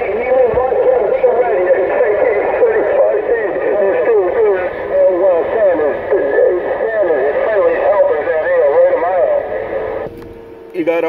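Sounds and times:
muffled voice over radio speaker: 0.0s - 10.0s.

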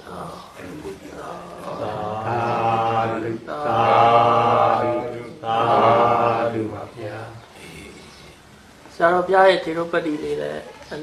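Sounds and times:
man chanting: 0.0s - 8.2s.

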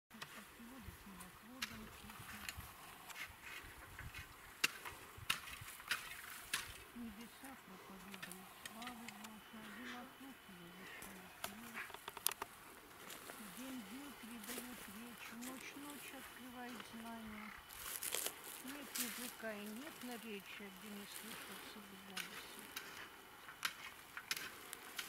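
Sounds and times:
faint women's voices talking: 0.1s - 2.8s, 6.9s - 12.0s, 13.1s - 17.6s, 18.5s - 22.8s.

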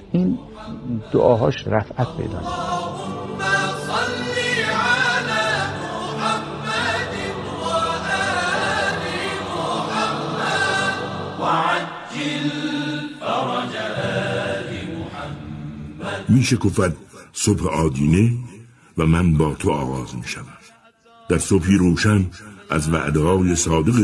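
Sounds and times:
choir chanting: 0.5s - 17.0s.

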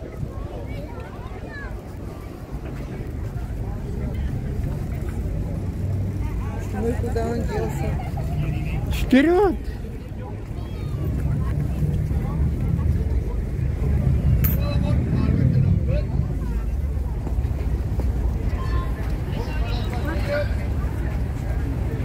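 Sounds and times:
people talking: 0.0s - 22.0s.

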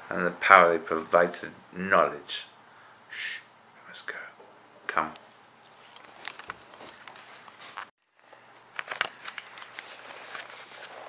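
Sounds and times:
camera handling clicks and rustles: 5.9s - 7.9s, 8.7s - 11.0s.

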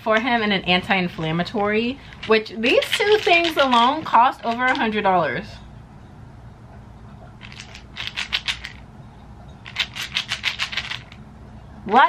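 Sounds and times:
pills rattling in plastic bottles: 2.0s - 5.0s, 7.4s - 8.8s, 9.7s - 11.2s.

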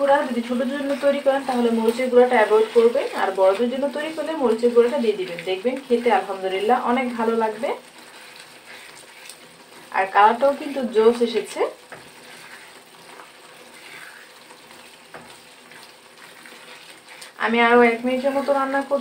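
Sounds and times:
sauce sizzling in a pan: 0.0s - 19.0s
spatula stirring in pan: 0.0s - 19.0s.

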